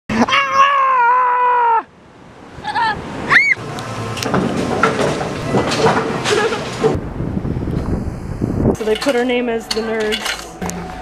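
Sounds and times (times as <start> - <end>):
high-pitched yelps: 2.6 - 3.6.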